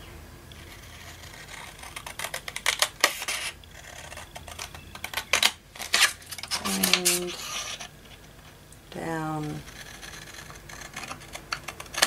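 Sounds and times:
scissors snipping paper: 0.8 - 7.9, 9.0 - 12.0.

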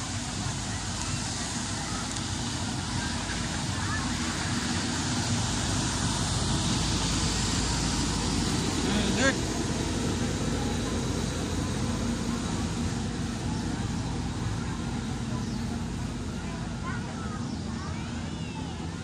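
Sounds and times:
faint voices of passers-by: 0.0 - 19.0
low rumble of traffic: 0.0 - 19.0.

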